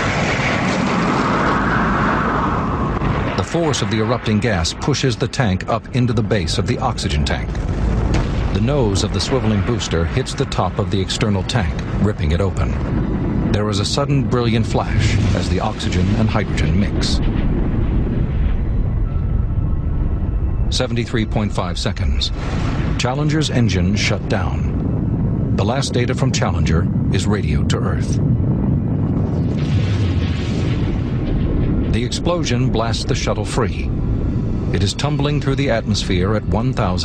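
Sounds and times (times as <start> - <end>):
rocket exhaust rumble: 0.0 - 37.0.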